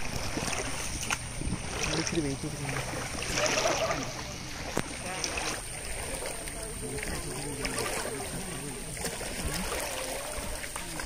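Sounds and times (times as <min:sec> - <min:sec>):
river water rushing: 0:00.0 - 0:11.0
wind on microphone: 0:00.0 - 0:11.0.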